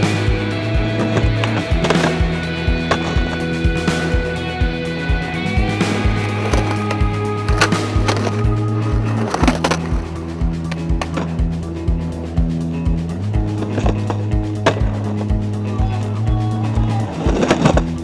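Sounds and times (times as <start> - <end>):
skateboard clacks: 0.0 - 4.1, 5.8 - 11.6, 13.4 - 16.1, 16.8 - 18.0
music with steady beat and bass: 0.0 - 18.0
skateboard wheels rolling on concrete: 0.0 - 18.0.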